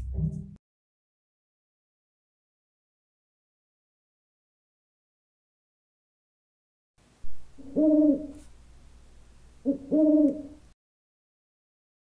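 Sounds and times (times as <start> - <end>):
owl hooting: 7.3 - 8.4, 9.6 - 10.7.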